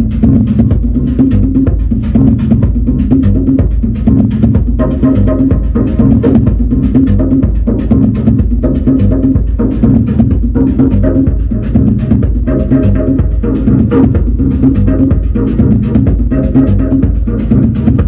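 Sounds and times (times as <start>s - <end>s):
low synthesizer bass line: 0.0s - 18.0s.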